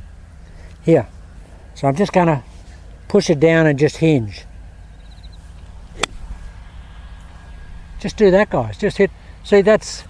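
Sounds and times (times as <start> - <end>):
golf club striking ball: 5.9 - 6.4.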